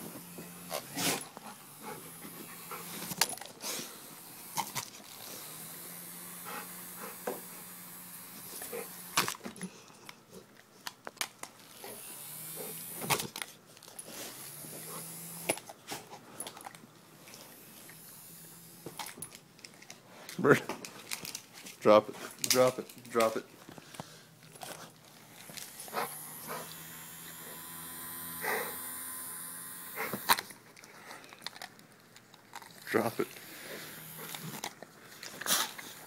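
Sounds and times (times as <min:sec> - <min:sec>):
handheld fan motor whirring: 0:00.0 - 0:09.6, 0:11.6 - 0:15.8, 0:17.3 - 0:19.4, 0:25.3 - 0:30.6, 0:32.8 - 0:36.0.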